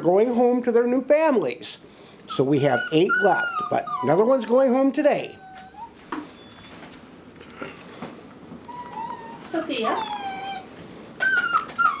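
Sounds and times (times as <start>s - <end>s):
puppies whining: 1.8s - 6.9s, 8.5s - 12.0s.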